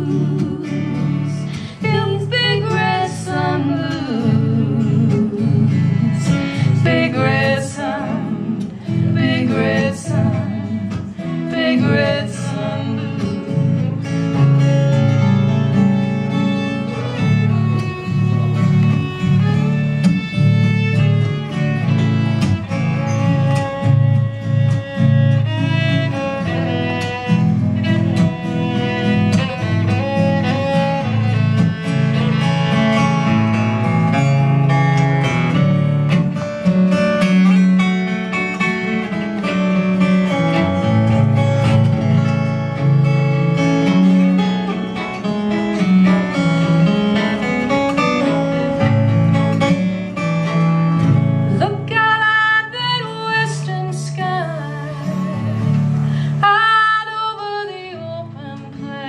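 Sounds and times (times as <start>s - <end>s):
fiddle solo: 0.0s - 59.0s
strummed acoustic guitar: 0.0s - 59.0s.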